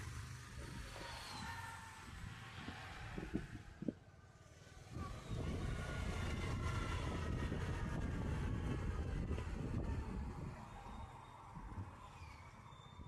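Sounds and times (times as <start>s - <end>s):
wind noise: 0.5s - 4.0s, 4.9s - 13.0s.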